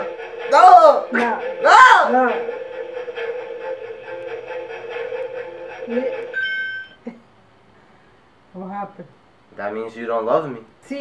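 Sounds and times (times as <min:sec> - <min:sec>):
electronic hum: 0:00.0 - 0:07.2
short high beep: 0:06.3 - 0:07.0.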